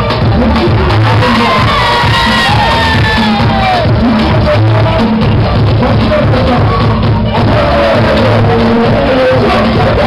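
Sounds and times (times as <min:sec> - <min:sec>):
loud dance music: 0:00.0 - 0:10.0
crowd cheering and screaming: 0:00.6 - 0:04.1, 0:06.3 - 0:10.0.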